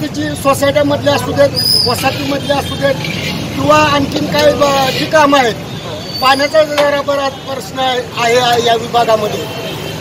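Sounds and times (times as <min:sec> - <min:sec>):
man speaking: 0:00.0 - 0:09.7.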